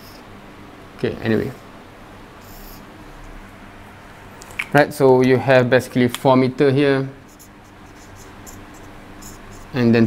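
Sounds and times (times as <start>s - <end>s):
marker pen writing on whiteboard: 7.2s - 9.8s.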